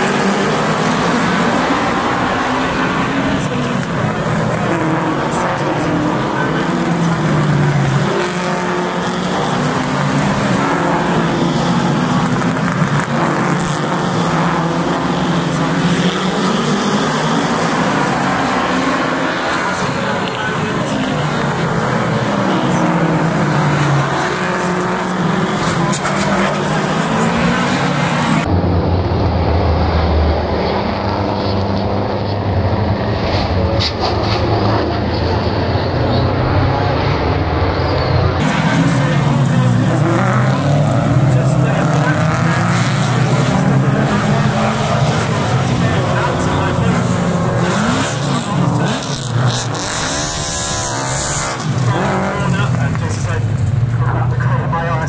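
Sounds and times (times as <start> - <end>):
stock car engines passing: 0.0 - 55.0.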